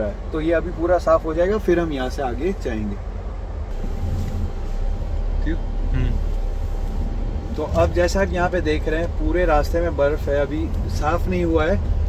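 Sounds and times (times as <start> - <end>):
car engine running: 0.0 - 12.0
defogger fan blowing: 0.0 - 12.0.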